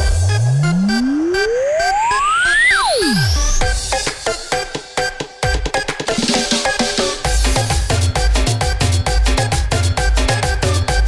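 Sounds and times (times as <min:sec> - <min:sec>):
synthesizer tone sweep: 0:00.0 - 0:03.8
electronic dance music: 0:00.0 - 0:11.0.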